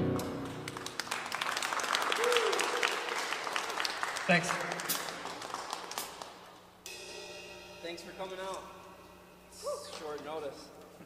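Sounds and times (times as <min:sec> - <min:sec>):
audience applause: 0:00.1 - 0:06.5
amplifier hum: 0:06.8 - 0:11.0
sustained ringing of band instruments: 0:06.8 - 0:11.0.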